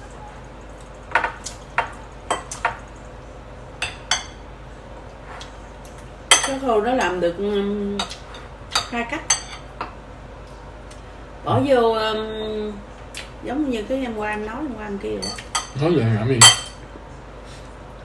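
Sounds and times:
cutlery clinking on ceramic bowl: 15.2s - 15.8s, 16.4s - 16.8s.

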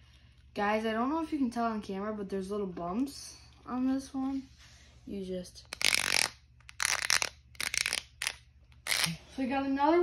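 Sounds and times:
plastic toy crunching and crackling: 5.8s - 9.1s.

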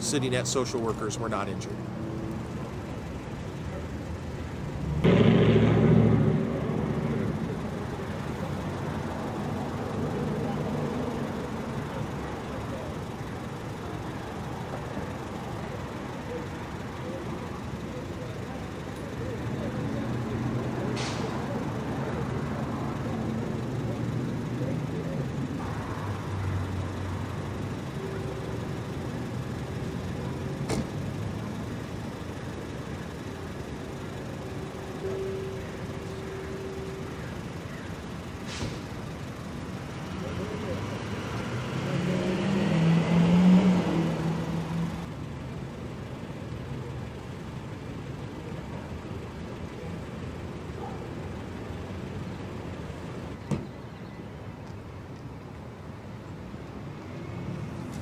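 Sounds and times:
passing vehicles: 0.0s - 58.0s
vehicle engine hum: 0.0s - 58.0s.

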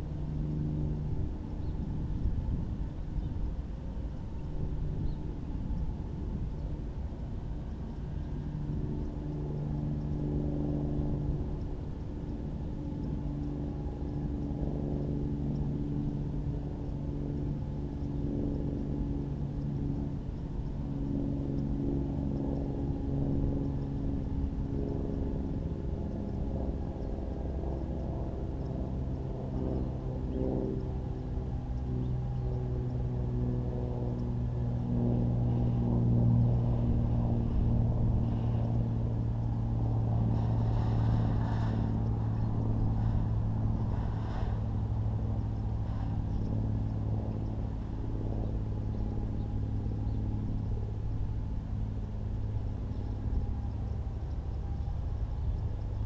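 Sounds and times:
engine running: 0.0s - 56.0s.

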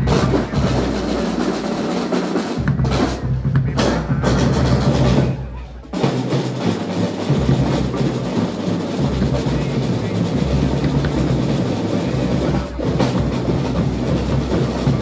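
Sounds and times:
marching drums: 0.0s - 15.0s.

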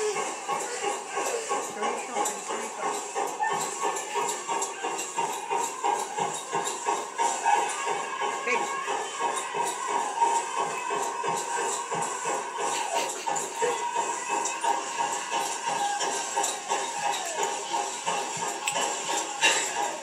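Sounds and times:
steady drumbeat: 0.0s - 20.0s.

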